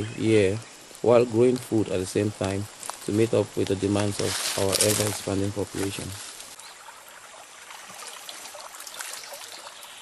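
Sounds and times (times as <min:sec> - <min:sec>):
water trickling in stream: 0:02.7 - 0:10.0.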